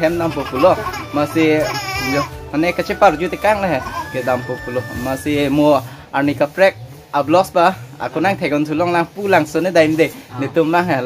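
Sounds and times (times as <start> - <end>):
man talking: 0.0 - 11.0
baby crying: 0.1 - 5.3.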